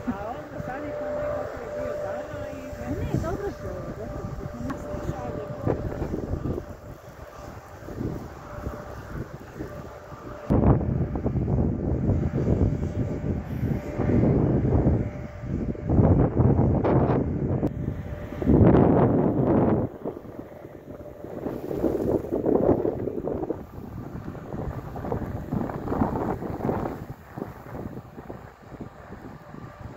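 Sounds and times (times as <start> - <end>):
faint steady tone: 0.0 - 15.8
wind buffeting microphone: 0.0 - 29.9.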